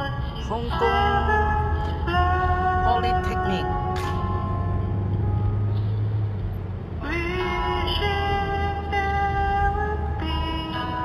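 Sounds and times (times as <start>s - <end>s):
song with singing voice: 0.0s - 4.3s
car cabin hum: 0.0s - 11.0s.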